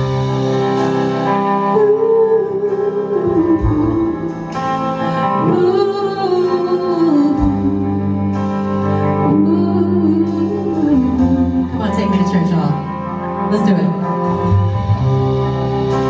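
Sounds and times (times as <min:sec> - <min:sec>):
electric bass: 0:00.0 - 0:16.0
live rock band playing: 0:00.0 - 0:16.0
woman singing long notes: 0:01.6 - 0:08.3, 0:09.2 - 0:11.8.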